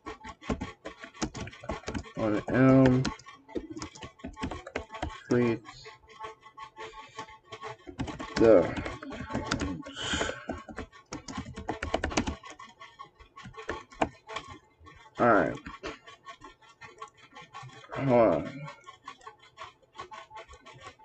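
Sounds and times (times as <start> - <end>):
keyboard typing clicks: 0.0 - 14.6
person's voice: 2.2 - 3.1, 5.2 - 5.8, 8.4 - 10.6, 15.2 - 15.7, 17.9 - 18.7.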